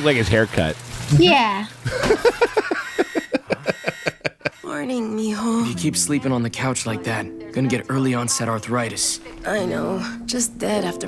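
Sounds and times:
man laughing: 1.8s - 4.6s.

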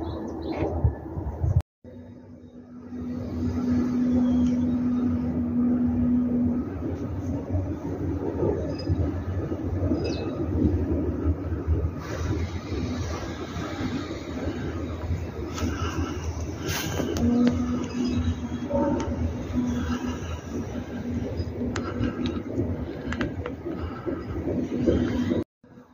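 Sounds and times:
wind buffeting microphone: 0.0s - 25.9s.

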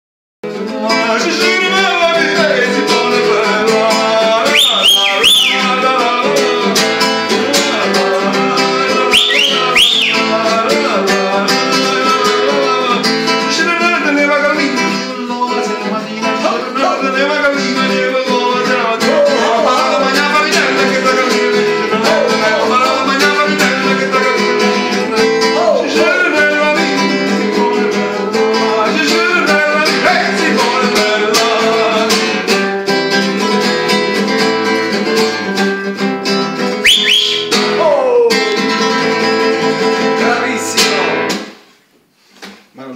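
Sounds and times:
strummed acoustic guitar: 0.4s - 41.7s
man singing: 0.5s - 32.6s, 36.9s - 41.3s.

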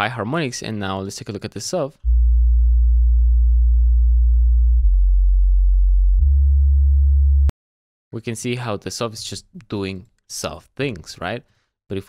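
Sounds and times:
sub-bass synth notes: 2.1s - 7.5s.

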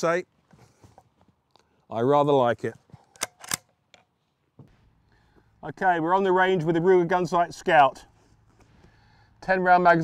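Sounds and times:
rifle bolt clicks: 3.1s - 4.1s.

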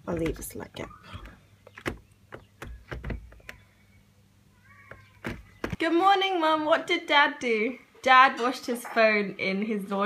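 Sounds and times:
window latch clicks and knocks: 1.2s - 3.6s.

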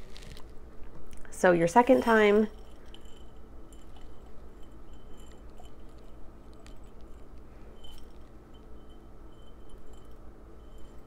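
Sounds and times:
wax beads rustling into glass: 0.0s - 0.6s, 1.7s - 11.0s.

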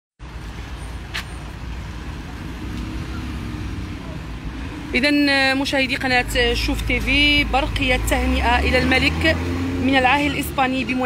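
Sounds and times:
road traffic rumble: 0.2s - 11.0s
passing engine hum: 0.3s - 11.0s.

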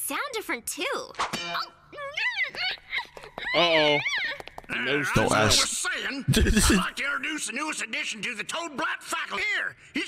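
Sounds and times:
person speaking: 5.1s - 7.0s.

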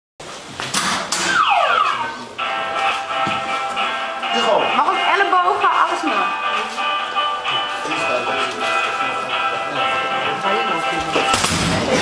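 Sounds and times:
falling electronic tone: 1.2s - 2.4s
electronic jingle: 1.3s - 2.9s.

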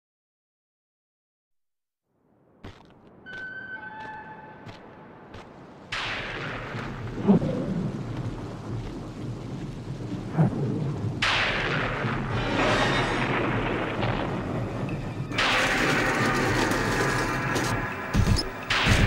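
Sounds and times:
steady rain: 4.7s - 19.0s
low thunder rumbles: 5.2s - 19.0s
thunder crash: 5.9s - 19.0s.

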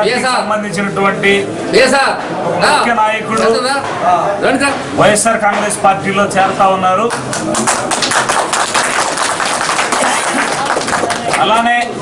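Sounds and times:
people clapping: 7.0s - 12.0s.

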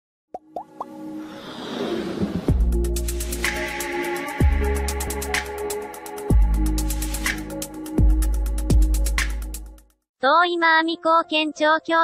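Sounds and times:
building music swell: 0.9s - 7.6s.

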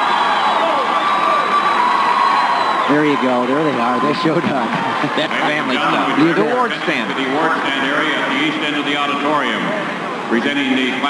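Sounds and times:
large crowd cheering: 0.0s - 8.4s.

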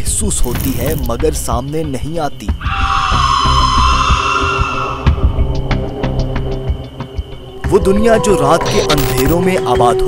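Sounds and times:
rushing airy drone: 2.7s - 7.8s
low throbbing pulse: 2.8s - 9.7s.

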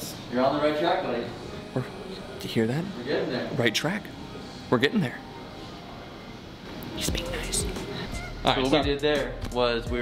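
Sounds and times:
indoor room background noise: 0.0s - 10.0s.

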